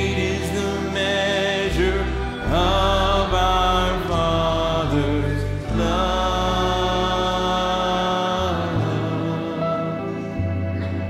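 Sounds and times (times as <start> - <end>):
low sustained instrumental chords: 0.0 - 11.0.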